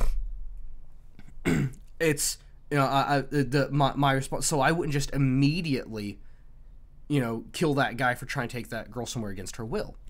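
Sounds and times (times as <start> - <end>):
man clearing his throat: 1.4 - 1.8.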